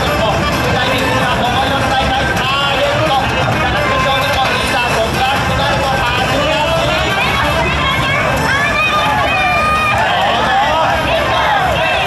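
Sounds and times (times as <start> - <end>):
crowd noise: 0.0 - 12.0
people singing or shouting: 0.0 - 12.0.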